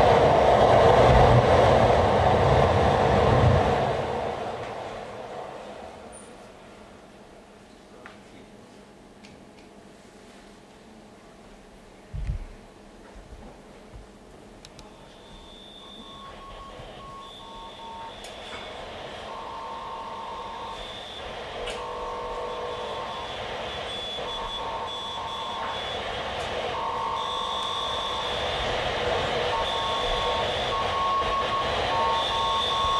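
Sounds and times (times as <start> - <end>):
steady electronic tones: 15.0 - 32.9.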